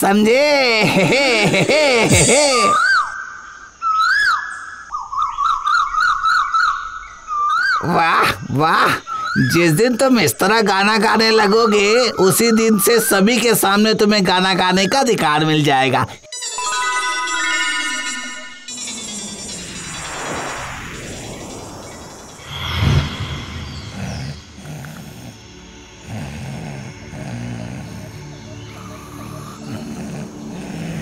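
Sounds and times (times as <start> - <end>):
cartoon bird whistling: 2.5 - 3.2
rising chime notes: 16.3 - 24.8
soft whooshing: 19.8 - 25.0.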